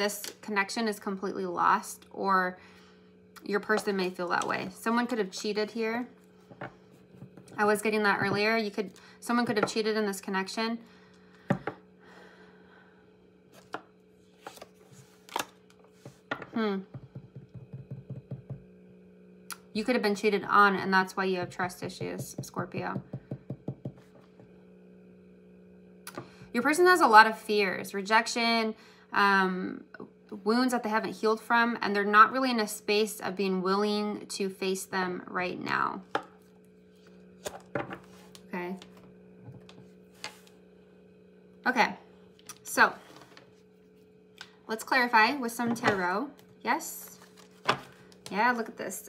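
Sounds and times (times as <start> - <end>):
faint electrical hum: 0.0 - 49.0.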